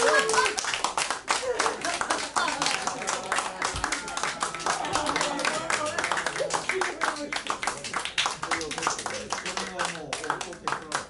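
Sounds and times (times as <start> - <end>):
audience clapping: 0.0 - 11.0.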